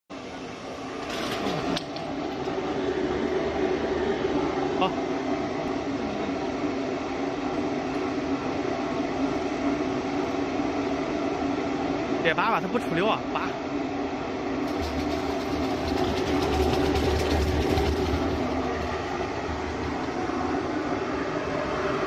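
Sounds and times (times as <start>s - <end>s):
machine motor humming: 14.5s - 22.0s.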